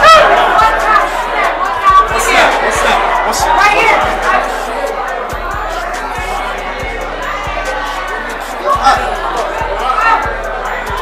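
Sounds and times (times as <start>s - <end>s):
crowded room hubbub: 0.0s - 11.0s
voices shouting and chattering: 0.0s - 11.0s.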